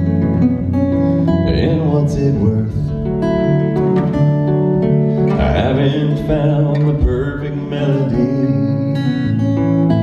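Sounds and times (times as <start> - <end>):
acoustic guitar strumming: 0.0 - 10.0
man singing a slow ballad: 1.2 - 3.6, 5.3 - 9.4.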